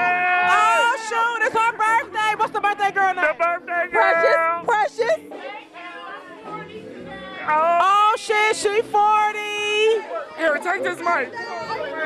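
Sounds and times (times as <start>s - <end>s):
crowd chatter: 0.0s - 12.0s.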